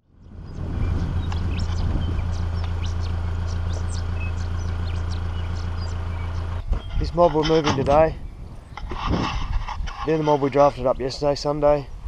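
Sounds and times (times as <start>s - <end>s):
vehicle engine humming: 0.0s - 11.7s
sheep hooves clicking on road: 1.0s - 8.1s.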